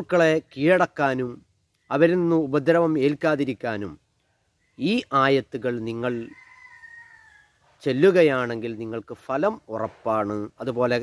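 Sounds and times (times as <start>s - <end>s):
distant rooster crowing: 6.0s - 8.4s.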